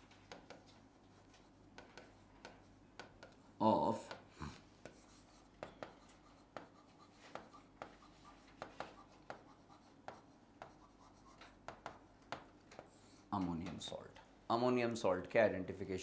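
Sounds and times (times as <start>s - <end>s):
marker writing on a board: 0.0s - 13.3s.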